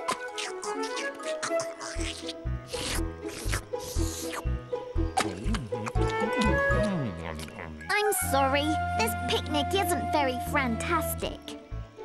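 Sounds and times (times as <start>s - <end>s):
light cartoon music: 0.0s - 12.0s.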